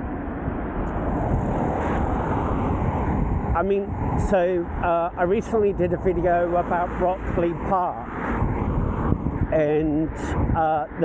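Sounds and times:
car passing: 0:00.0 - 0:11.0
wind and road noise: 0:00.0 - 0:11.0.

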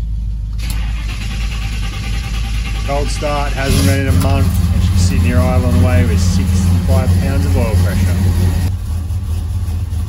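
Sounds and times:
engine starting and rumbling: 0:00.0 - 0:10.0.

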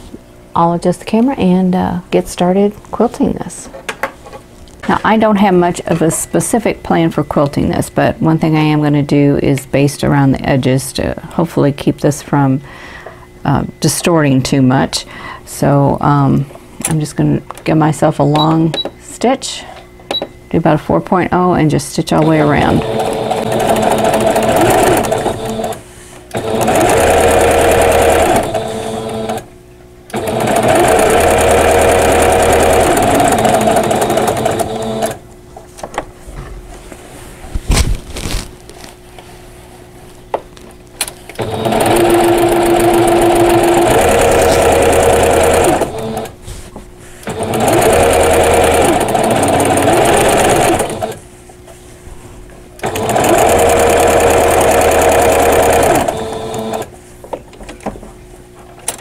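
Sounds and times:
sewing machine running: 0:22.2 - 0:29.5, 0:30.1 - 0:35.2, 0:41.4 - 0:46.3, 0:47.3 - 0:51.2, 0:52.8 - 0:56.9.

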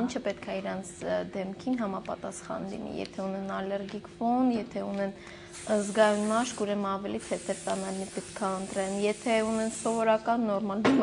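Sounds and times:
woman talking: 0:00.0 - 0:11.0.

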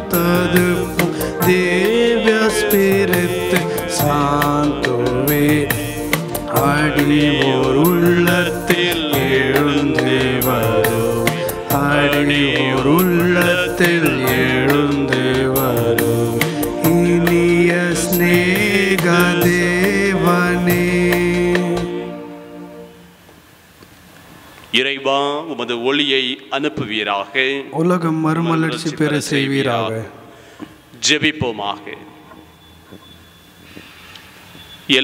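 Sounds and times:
percussive strikes: 0:00.0 - 0:22.0
hymn singing: 0:00.0 - 0:23.2
instrumental accompaniment: 0:00.0 - 0:23.4.

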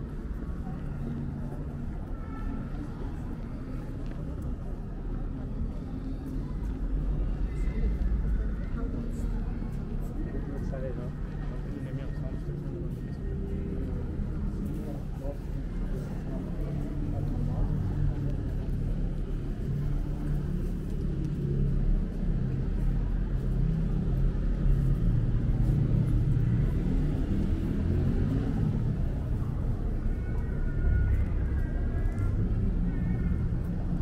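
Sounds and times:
indistinct voices of passers-by: 0:00.0 - 0:34.0
low street rumble: 0:00.0 - 0:34.0.

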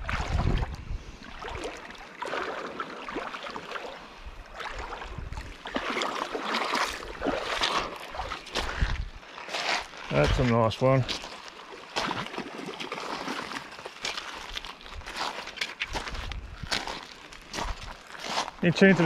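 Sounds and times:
wind rumbling on microphone: 0:00.0 - 0:01.6, 0:04.2 - 0:05.6, 0:06.9 - 0:09.2, 0:15.9 - 0:18.0
shallow river water rushing: 0:00.0 - 0:09.7, 0:11.1 - 0:15.6.

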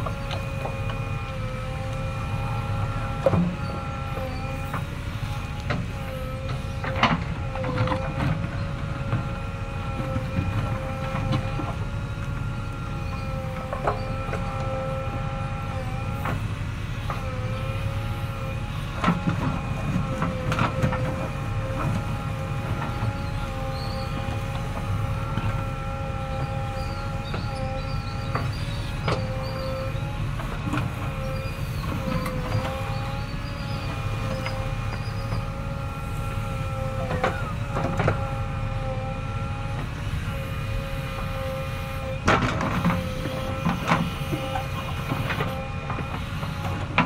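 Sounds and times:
diesel engine running: 0:00.0 - 0:47.0
hydraulic whine: 0:00.0 - 0:47.0.

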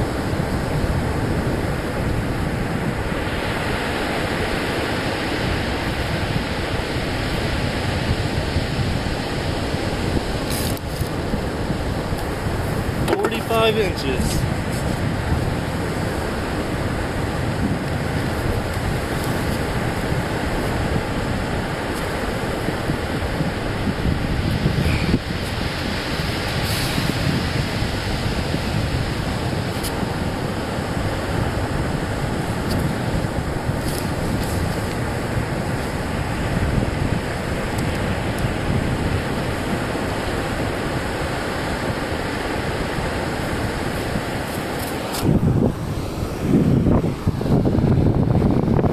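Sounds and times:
surf breaking on beach: 0:00.0 - 0:48.9
wind noise on microphone: 0:00.0 - 0:48.9.

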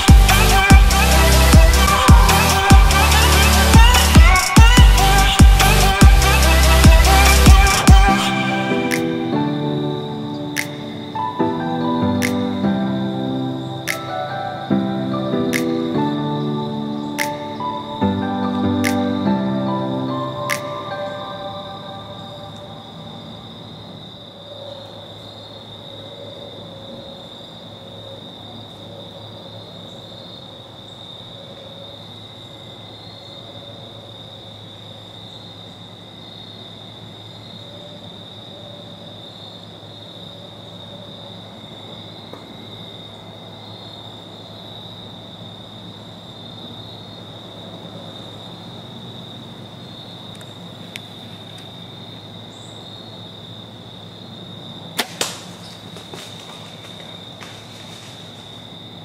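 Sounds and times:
insects chorus: 0:00.0 - 0:59.0
bowstring release crack: 0:55.0 - 0:56.4
arrow striking deer: 0:55.0 - 0:58.2
rustling in leaves: 0:55.0 - 0:59.0.

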